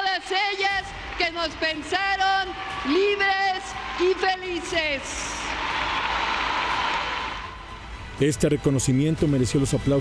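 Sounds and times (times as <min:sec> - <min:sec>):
audience applauding: 0:02.7 - 0:07.6.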